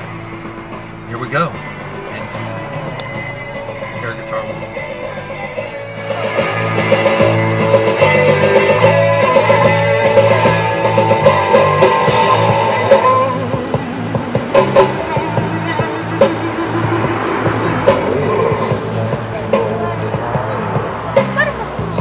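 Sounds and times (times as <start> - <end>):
drums: 0.0 - 22.0
rock music: 0.0 - 22.0
electric guitar: 4.6 - 21.4.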